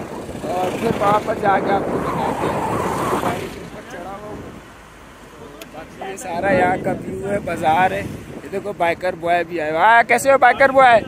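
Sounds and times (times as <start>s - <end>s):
jeep engine and road noise: 0.0s - 11.0s
voices: 0.0s - 11.0s.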